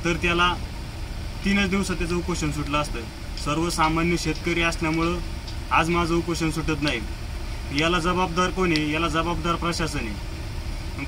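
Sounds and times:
man speaking: 0:00.0 - 0:00.6, 0:01.4 - 0:07.1, 0:07.7 - 0:10.2
low rumble: 0:00.0 - 0:11.0.

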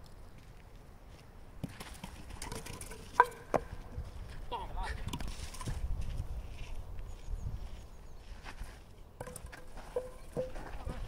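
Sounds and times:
wooden bat striking wooden pins: 0:01.7 - 0:04.0, 0:09.2 - 0:11.0.

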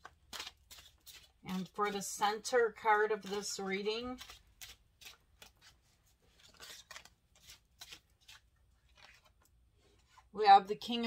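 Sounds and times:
cards being shuffled: 0:00.0 - 0:02.0, 0:03.2 - 0:10.2.

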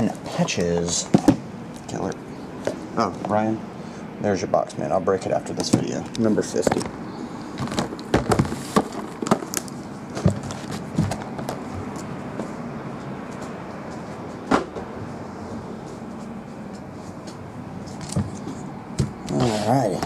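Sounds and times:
low room hum: 0:00.0 - 0:20.0
cardboard boxes knocking on table: 0:07.6 - 0:09.5.

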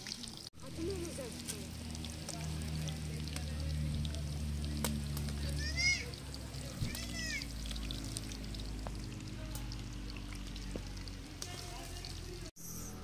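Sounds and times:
oil sizzling in a pan: 0:00.0 - 0:12.6.

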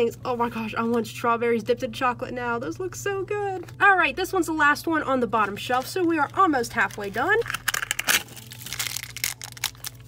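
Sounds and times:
plastic wrapper crinkling: 0:05.5 - 0:10.0.

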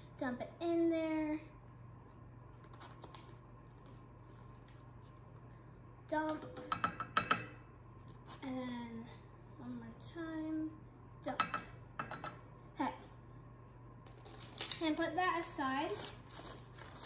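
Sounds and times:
plastic spoon knocking on saucepan: 0:06.4 - 0:07.6, 0:11.3 - 0:12.4.

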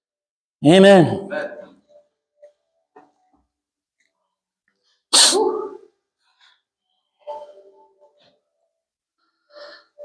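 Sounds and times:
man sneezing: 0:05.1 - 0:05.8.

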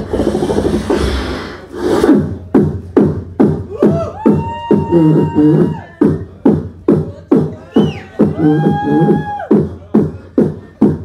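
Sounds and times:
rasping rising sweep: 0:00.0 - 0:02.5
buzzy beatbox bass: 0:00.0 - 0:11.0
sharp percussive beatbox hits: 0:00.0 - 0:11.0.

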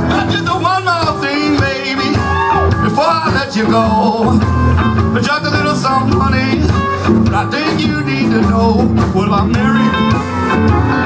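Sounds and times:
live blues band playing: 0:00.0 - 0:11.0.

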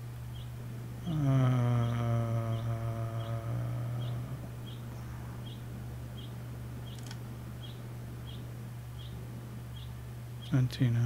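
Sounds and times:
man humming low note: 0:01.0 - 0:05.6.

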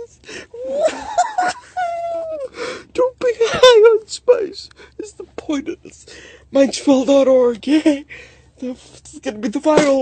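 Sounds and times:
man moaning and wailing: 0:00.0 - 0:02.6
man laughing: 0:00.6 - 0:02.5.

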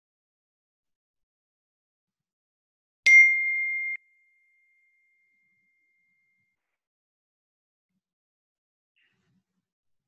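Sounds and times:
bright bell-like chime: 0:03.1 - 0:06.6.

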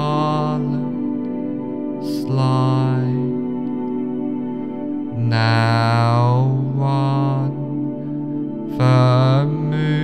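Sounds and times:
chanted vocal notes: 0:00.0 - 0:10.0
low drone: 0:00.0 - 0:10.0.

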